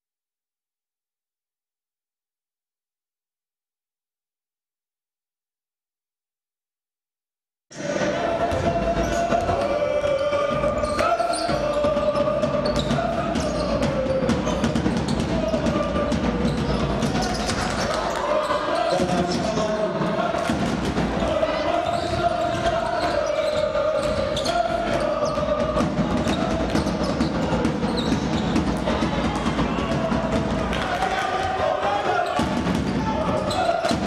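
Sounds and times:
hum of crowd voices: 7.7s - 34.0s.

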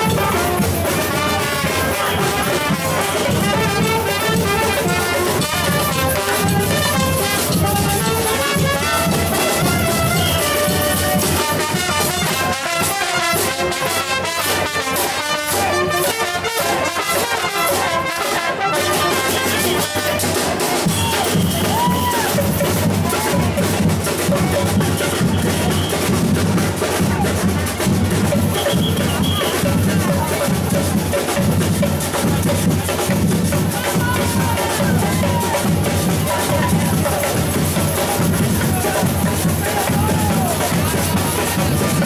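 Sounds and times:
brass melody: 0.0s - 21.8s
drums beating: 0.0s - 42.0s.

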